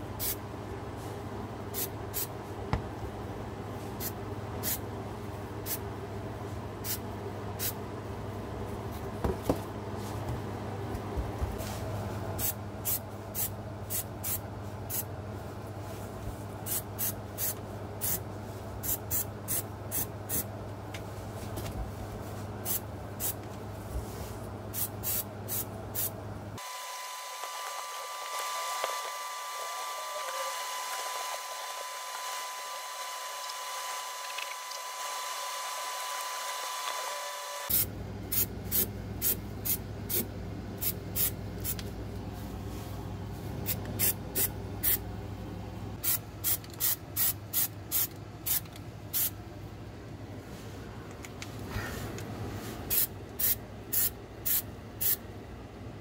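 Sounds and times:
spray can hissing bursts: 0:40.8 - 0:41.8, 0:44.0 - 0:45.0, 0:46.0 - 0:49.3, 0:52.9 - 0:55.2.

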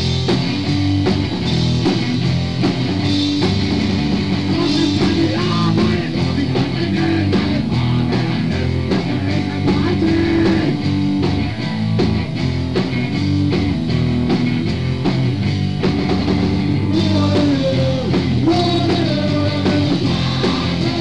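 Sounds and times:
drum kit: 0:00.0 - 0:21.0
electric guitar chords: 0:00.0 - 0:21.0.

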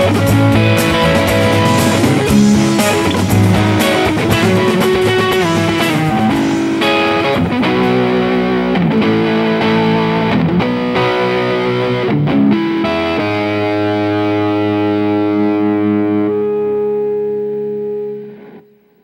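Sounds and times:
distorted electric guitar: 0:00.0 - 0:19.0.

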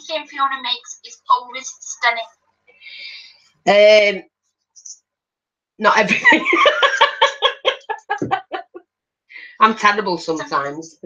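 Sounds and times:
woman laughing: 0:06.1 - 0:08.8.

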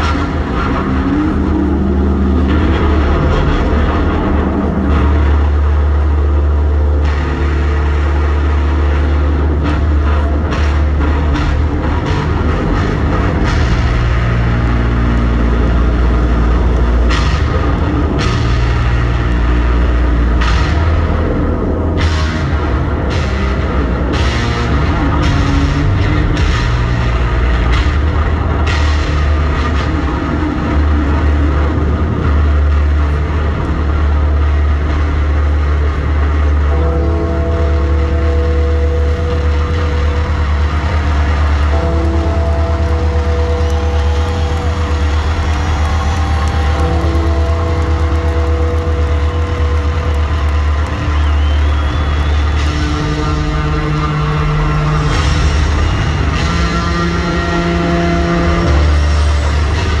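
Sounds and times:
distorted electric bass solo: 0:00.0 - 1:00.0.

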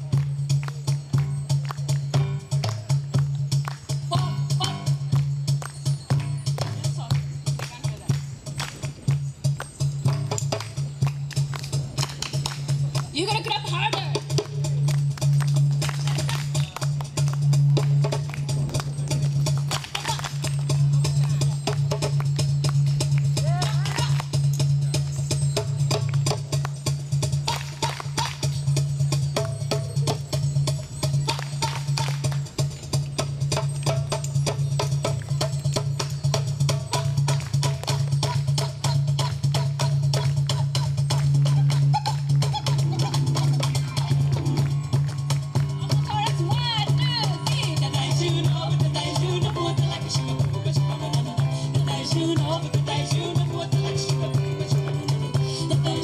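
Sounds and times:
hand drums beating: 0:00.0 - 0:56.0
women singing: 0:46.7 - 0:56.0.

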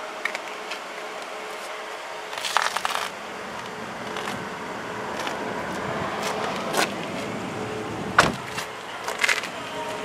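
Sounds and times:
car door shutting: 0:08.0 - 0:09.2.

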